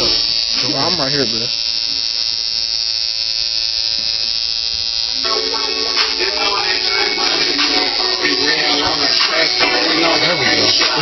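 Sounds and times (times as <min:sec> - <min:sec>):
tattoo machine buzzing: 0:00.0 - 0:11.0
music: 0:05.2 - 0:11.0.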